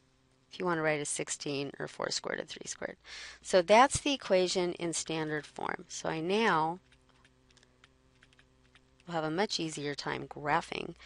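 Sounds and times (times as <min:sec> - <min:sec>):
faint electrical hum: 0:00.0 - 0:11.0
stylus tapping on pen tablet: 0:06.8 - 0:09.1.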